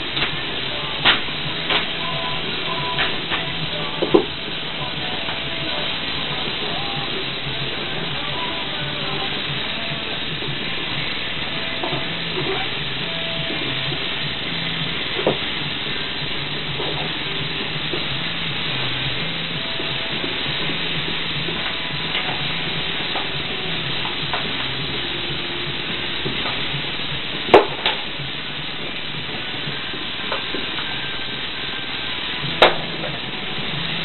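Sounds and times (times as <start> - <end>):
faint music: 0.0 - 34.0
steady hiss: 0.0 - 34.0.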